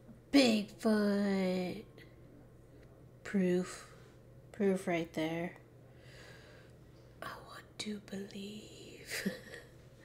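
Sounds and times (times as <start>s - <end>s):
faint low hum: 0.0s - 10.0s
woman speaking: 0.3s - 2.0s, 3.2s - 5.6s, 7.2s - 9.4s.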